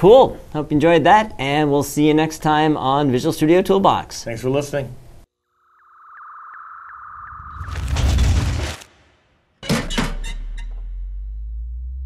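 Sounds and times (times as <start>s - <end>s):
high electronic tone: 5.4s - 8.0s.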